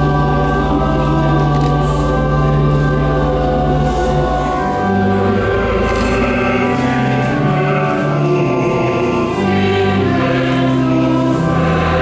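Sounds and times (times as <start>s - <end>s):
choir singing a hymn: 0.0s - 12.0s
organ playing chords: 0.0s - 12.0s.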